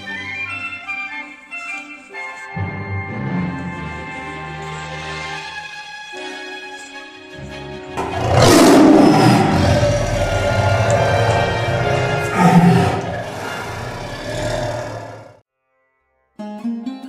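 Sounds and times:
theme music: 7.6s - 15.3s
tiger roaring: 8.0s - 15.4s.

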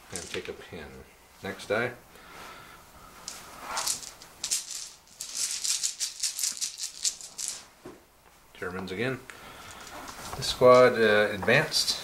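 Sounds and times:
plastic dice rattling in cloth bag: 3.3s - 7.7s.

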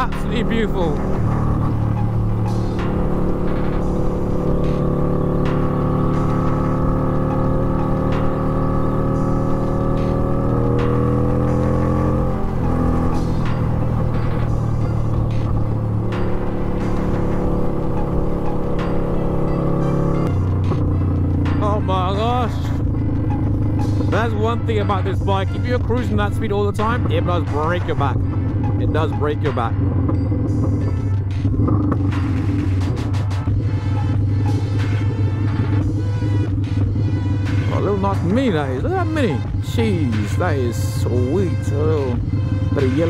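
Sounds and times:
motorcycle engine running: 0.0s - 43.0s.

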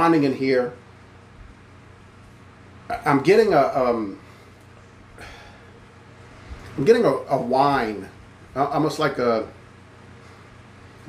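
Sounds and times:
man speaking: 0.0s - 0.8s, 2.9s - 4.2s, 6.8s - 9.6s.

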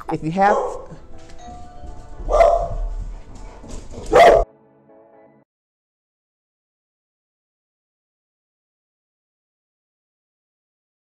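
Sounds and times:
dog barking loudly: 0.4s - 1.0s, 2.3s - 2.8s, 4.0s - 4.5s.

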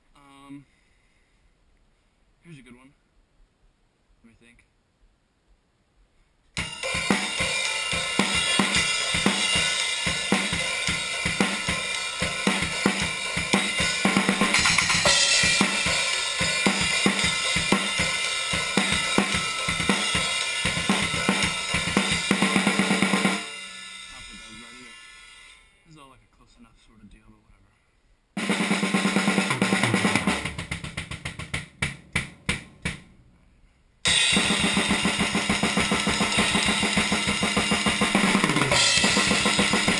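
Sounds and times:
drum kit played hard: 6.6s - 25.5s, 28.4s - 33.1s, 34.0s - 39.9s
cymbals ringing out: 6.6s - 25.9s, 34.1s - 39.9s.

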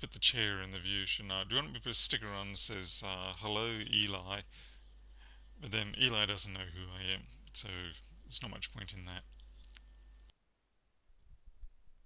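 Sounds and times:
low mains hum: 0.0s - 12.0s.

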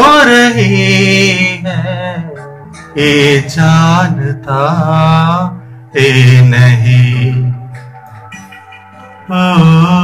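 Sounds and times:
man singing with reverb: 0.0s - 8.0s, 9.1s - 10.0s.

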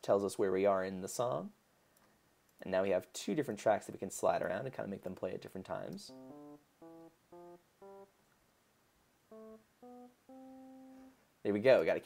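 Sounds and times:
electric piano single notes: 6.1s - 8.1s, 9.3s - 11.2s.

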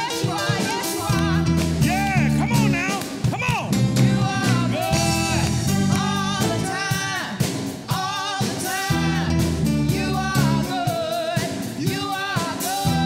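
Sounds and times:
instrumental accompaniment with bass: 0.0s - 13.0s.

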